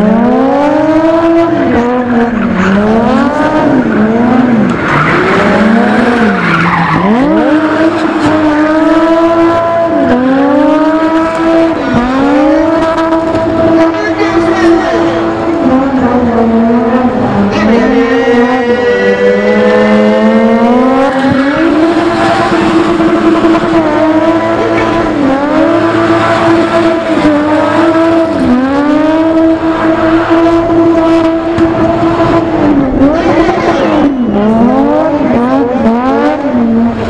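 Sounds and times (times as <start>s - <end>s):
car engine at high revs: 0.0s - 37.0s.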